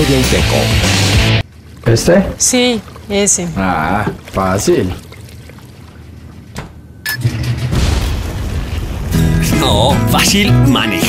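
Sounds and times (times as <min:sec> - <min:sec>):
comedic explosion rumble: 0:07.1 - 0:10.9.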